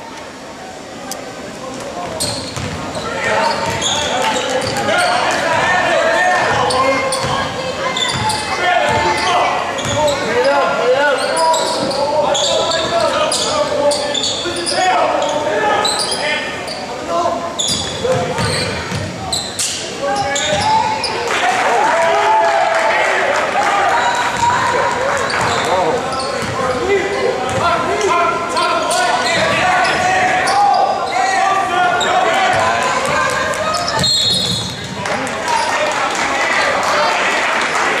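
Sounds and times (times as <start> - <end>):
players and spectators talking: 0.0 - 38.0.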